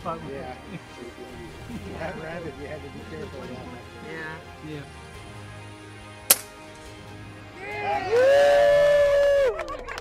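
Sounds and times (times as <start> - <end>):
music holding loud chord: 0.0 - 9.4
air rifle shot: 6.3 - 6.6.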